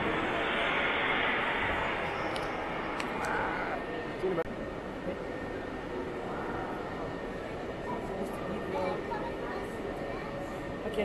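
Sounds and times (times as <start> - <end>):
noisy rumble: 0.0 - 7.8.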